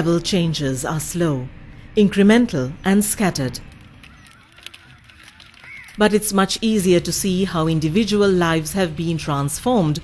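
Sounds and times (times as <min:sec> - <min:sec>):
faint bird calls: 0:04.0 - 0:06.0.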